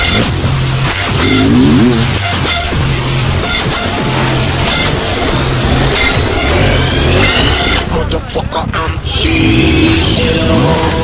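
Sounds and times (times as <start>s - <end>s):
music with repeating bass line: 0.0s - 8.7s
dirt bike engines revving: 0.0s - 11.0s.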